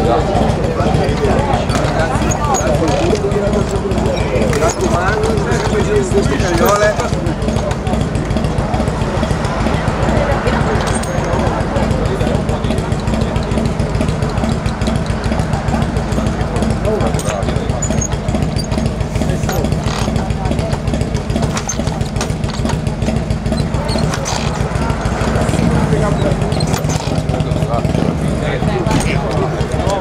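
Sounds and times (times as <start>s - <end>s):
crowd voices: 0.0s - 30.0s
motorcycle engine running: 0.0s - 30.0s.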